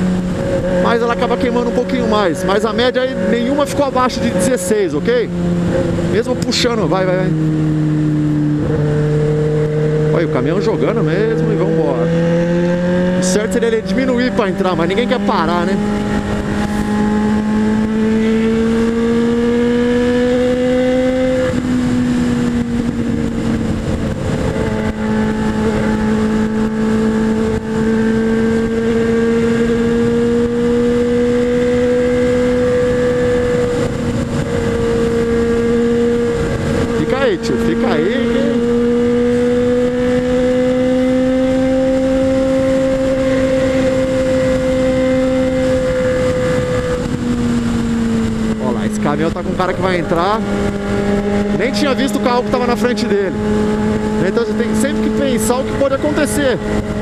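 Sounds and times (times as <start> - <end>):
motorcycle engine at high revs: 0.0 - 57.0
wind rush over microphone: 0.0 - 57.0.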